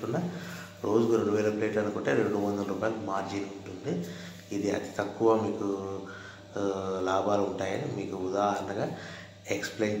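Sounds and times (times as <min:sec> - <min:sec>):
man speaking in sing-song phrases: 0:00.0 - 0:10.0
steady low hum: 0:00.0 - 0:10.0.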